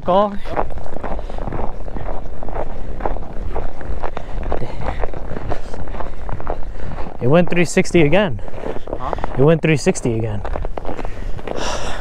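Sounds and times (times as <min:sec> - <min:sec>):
wind rumble on microphone: 0:00.0 - 0:09.3, 0:10.2 - 0:12.0
boots crunching on snow: 0:00.0 - 0:12.0.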